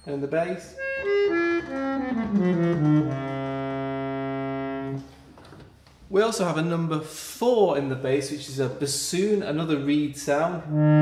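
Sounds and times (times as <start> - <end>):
harmonium notes: 0.8 - 5.0.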